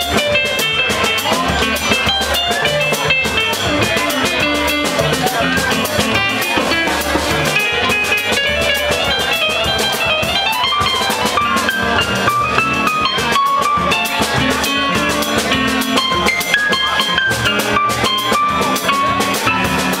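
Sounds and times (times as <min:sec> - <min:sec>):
drums: 0:00.0 - 0:20.0
keyboard playing fast piano runs: 0:00.0 - 0:20.0
walking bass line: 0:00.0 - 0:20.0.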